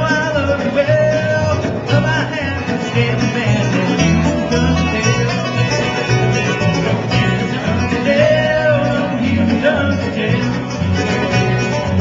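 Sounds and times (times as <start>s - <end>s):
acoustic guitars: 0.0s - 12.0s
banjo: 0.0s - 12.0s
mandolin: 0.0s - 12.0s
upright bass plucking: 0.0s - 12.0s.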